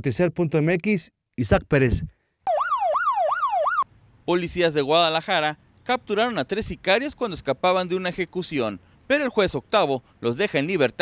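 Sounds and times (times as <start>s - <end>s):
police siren yelping: 2.5s - 3.8s.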